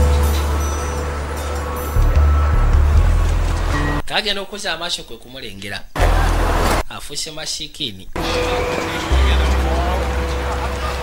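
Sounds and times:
city street traffic: 0.0s - 4.0s, 6.0s - 6.8s, 8.2s - 11.0s
deep bass tone: 0.0s - 4.0s, 6.0s - 6.8s, 8.2s - 11.0s
background film music: 0.0s - 4.1s, 8.2s - 11.0s.

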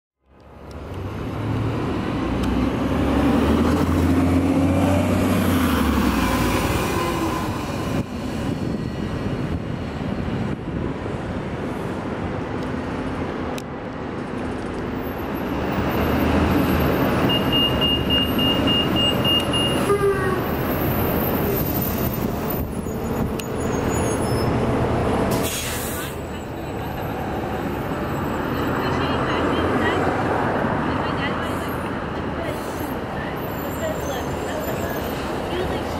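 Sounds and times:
bus diesel engine: 0.2s - 35.9s
short high beeps: 17.3s - 19.9s
brief hiss: 25.3s - 26.2s.

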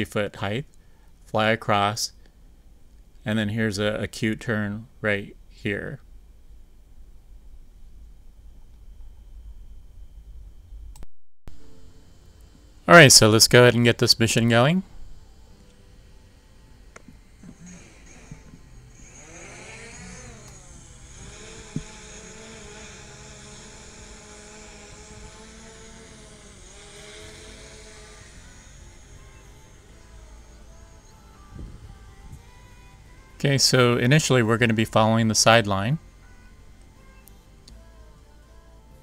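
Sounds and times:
drone propellers buzzing whine: 2.0s - 39.0s.

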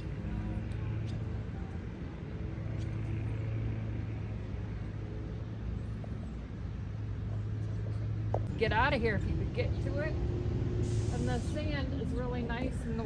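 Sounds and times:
low mechanical hum: 0.0s - 13.0s
outdoor background noise: 0.0s - 13.0s.

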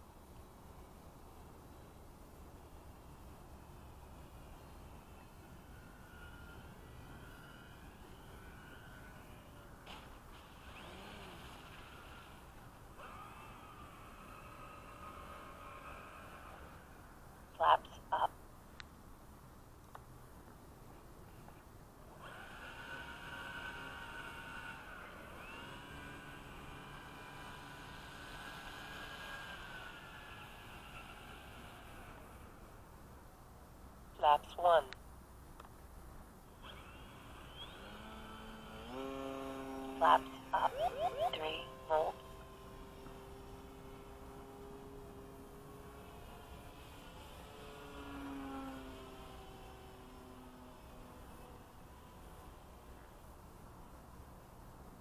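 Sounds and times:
electric motor and propeller whine: 0.0s - 17.7s, 21.0s - 33.3s, 36.4s - 55.0s.

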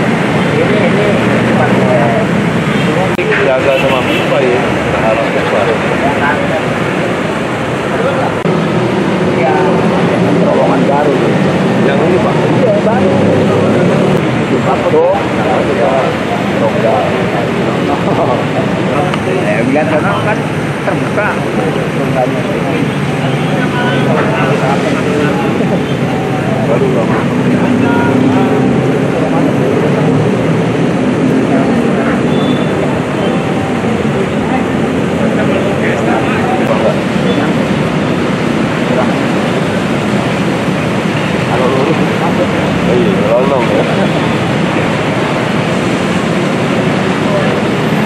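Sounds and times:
indistinct voices talking: 0.0s - 48.0s
loud steady rushing noise: 0.0s - 48.0s.

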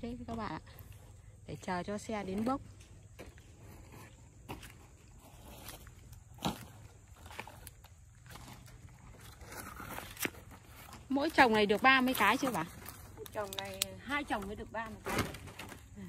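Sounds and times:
quiet footsteps: 2.1s - 14.0s
thin wood cracking underfoot: 5.5s - 16.0s.

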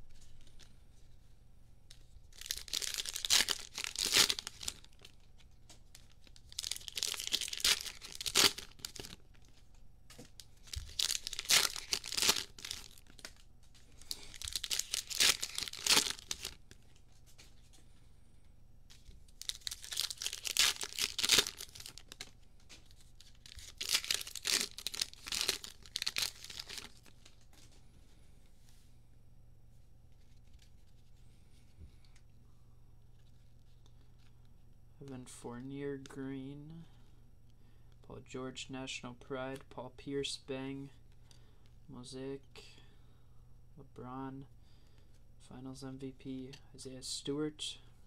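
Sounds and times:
foil wrappers tearing and crinkling: 2.3s - 5.2s, 5.9s - 9.4s, 10.6s - 13.4s, 14.0s - 16.7s, 19.4s - 22.3s, 23.2s - 27.1s.

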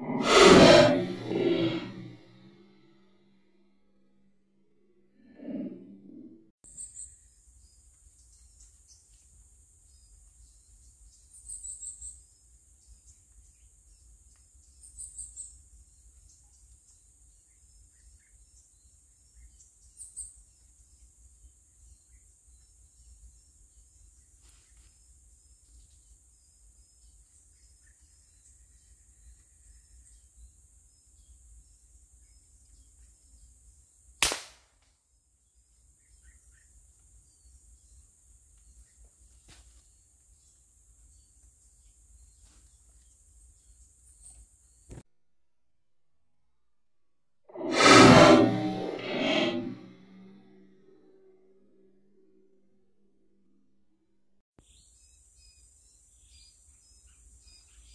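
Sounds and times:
air rifle shot: 34.2s - 34.6s.

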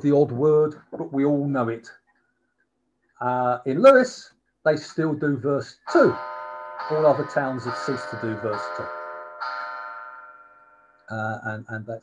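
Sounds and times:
bell-like chime ringing: 5.9s - 11.2s.

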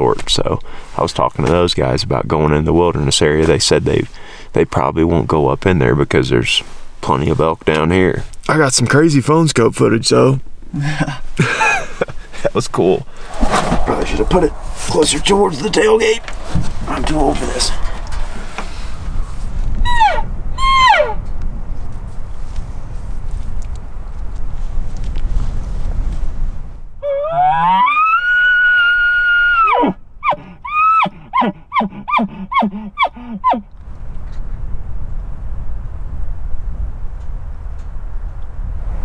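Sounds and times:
rising elk call whistle: 19.8s - 21.2s, 27.0s - 33.6s
elk call squeals: 19.9s - 21.2s, 27.0s - 33.6s.

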